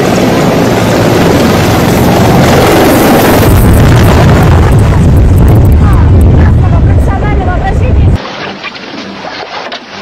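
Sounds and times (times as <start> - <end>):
helicopter rotor and engine noise: 0.0 - 8.2
rotor downwash buffeting microphone: 0.0 - 10.0.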